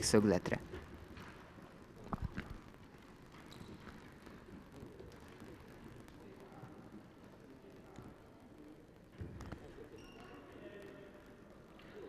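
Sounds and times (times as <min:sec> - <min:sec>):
faint sports hall background: 0:00.0 - 0:12.0.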